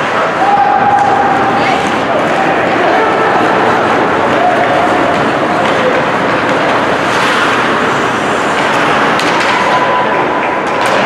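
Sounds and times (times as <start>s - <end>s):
ice rink ambience: 0.0s - 11.0s
skates on ice: 0.0s - 11.0s.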